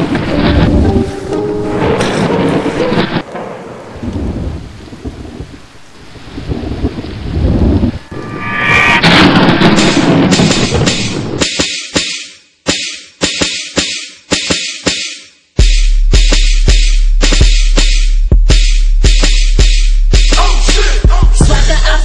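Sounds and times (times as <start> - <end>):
rumbling thunder: 1.7 - 11.4
rain-like hiss: 3.2 - 8.1
song beat: 15.6 - 21.8.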